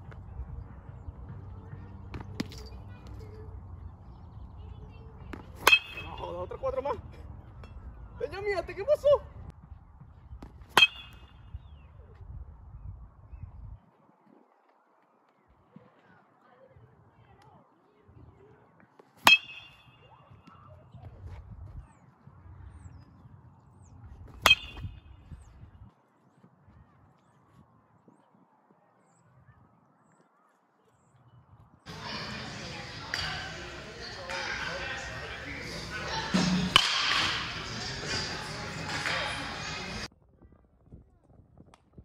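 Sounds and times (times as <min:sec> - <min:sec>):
baseball bat hitting ball: 0:02.1 - 0:02.8, 0:05.3 - 0:06.5, 0:10.4 - 0:11.5, 0:19.2 - 0:20.1, 0:24.3 - 0:25.0, 0:31.9 - 0:40.0
metal bat hitting ball: 0:02.1 - 0:02.8, 0:05.3 - 0:06.4, 0:10.7 - 0:11.4, 0:19.2 - 0:20.1, 0:24.4 - 0:25.0, 0:36.3 - 0:37.8
indistinct voices echoing: 0:31.9 - 0:40.1.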